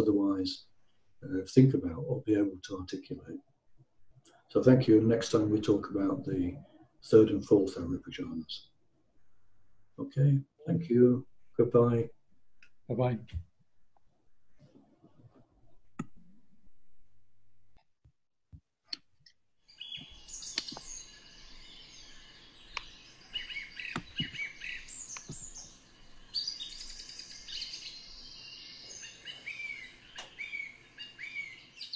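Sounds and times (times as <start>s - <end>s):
birds chirping and singing: 19.7s - 31.9s
faint background hiss: 19.8s - 31.9s.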